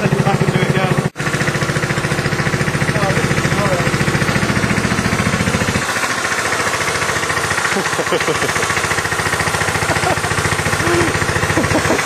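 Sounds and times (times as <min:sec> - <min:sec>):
go-kart engine idling: 0:00.0 - 0:12.0.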